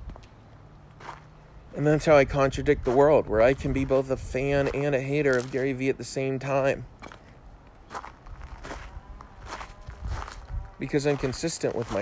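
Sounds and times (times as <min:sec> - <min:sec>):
footsteps walking: 0:00.9 - 0:01.3, 0:02.8 - 0:05.8, 0:07.0 - 0:12.0.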